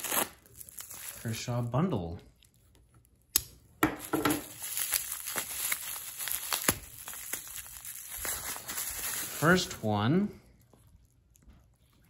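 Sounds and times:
bubble wrap crinkling: 0:00.0 - 0:03.3, 0:04.0 - 0:11.8.

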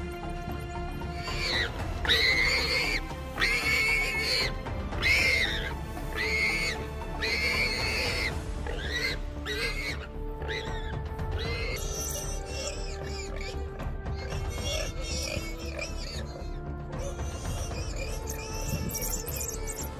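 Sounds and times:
background music: 0:00.0 - 0:19.9
high-pitched animal squeals: 0:01.2 - 0:19.9.

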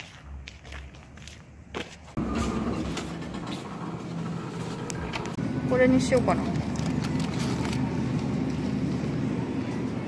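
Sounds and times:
footsteps walking: 0:00.0 - 0:05.4
store indoor background hum: 0:00.0 - 0:10.0.

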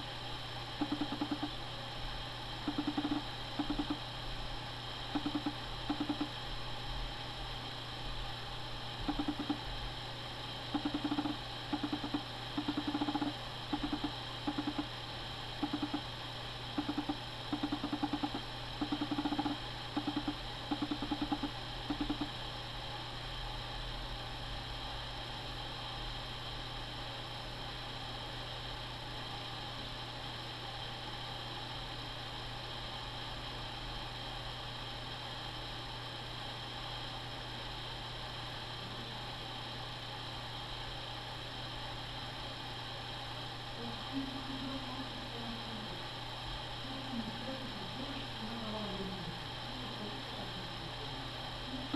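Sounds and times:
constant hiss: 0:00.0 - 0:51.9
low electrical hum: 0:00.0 - 0:51.9.

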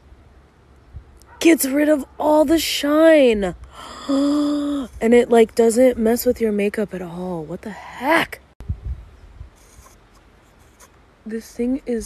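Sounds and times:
face roller rubbing on skin: 0:09.6 - 0:10.9.

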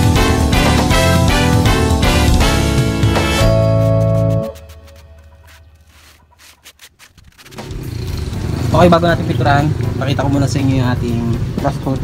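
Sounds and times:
sandpaper scratching on wood: 0:03.4 - 0:08.1.

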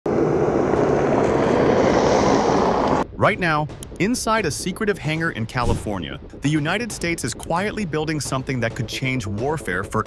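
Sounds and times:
jet aircraft flying low past: 0:00.1 - 0:03.0.

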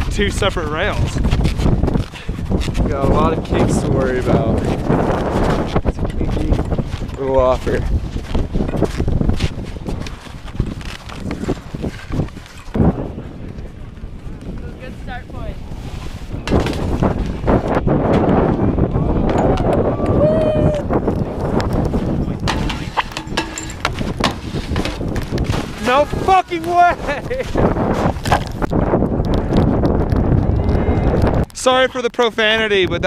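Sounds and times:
wind rumbling on microphone: 0:00.0 - 0:33.0
sharp knocks: 0:22.5 - 0:25.0
skis scraping over wet snow: 0:24.4 - 0:28.2.

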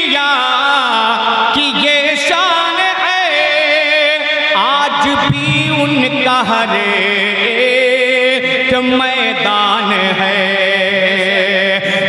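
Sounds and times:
man singing devotional poem: 0:00.0 - 0:12.0.

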